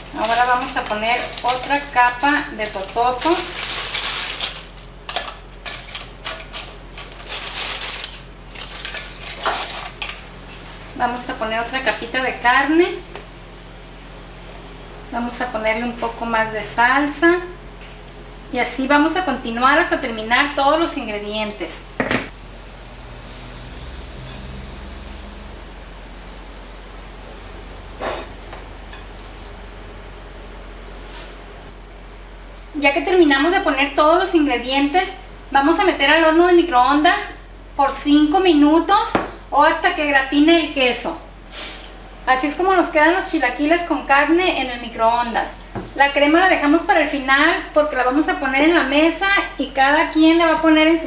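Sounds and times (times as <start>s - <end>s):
chips crackling: 0.0s - 10.2s
steady low hum: 0.0s - 51.0s.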